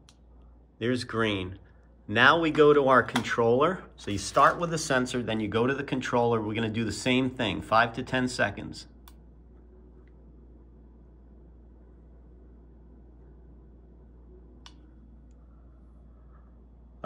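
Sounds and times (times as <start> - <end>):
steady low hum: 0.0 - 17.0
faint sharp click: 14.6 - 15.4.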